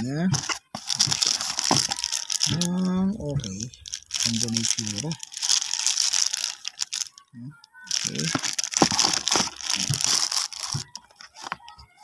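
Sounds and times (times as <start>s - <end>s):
plastic packaging crinkling: 0.3s - 11.8s.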